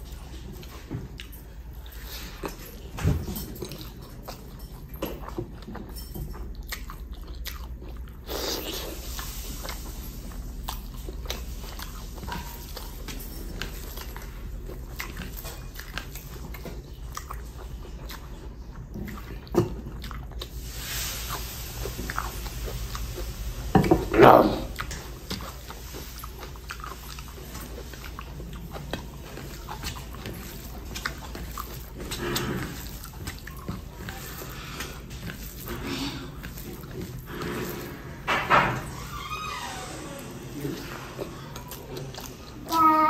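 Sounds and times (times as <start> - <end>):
chewing and biting: 0.0 - 23.6, 24.7 - 39.0, 40.5 - 42.7.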